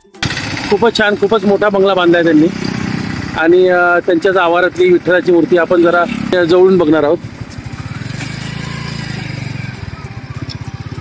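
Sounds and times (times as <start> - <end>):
vehicle engine running: 0.2 - 11.0
man speaking: 3.4 - 7.2.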